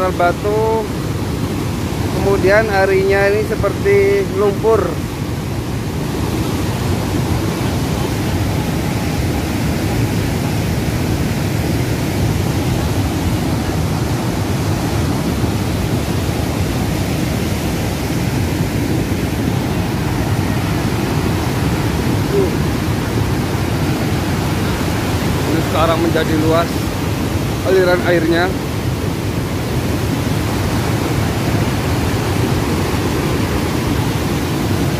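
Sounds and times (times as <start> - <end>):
muddy water rushing with stones: 0.0 - 34.9.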